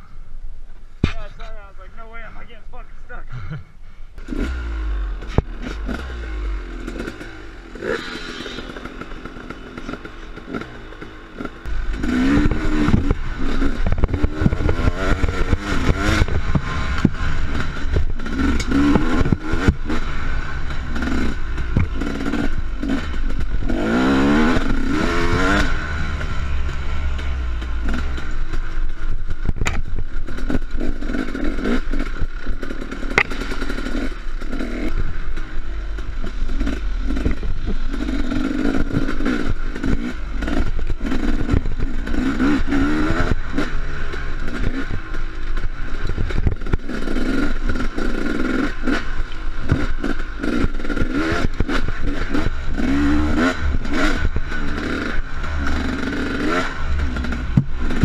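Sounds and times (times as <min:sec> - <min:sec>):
dirt bike engine revving: 0:04.2 - 0:58.0.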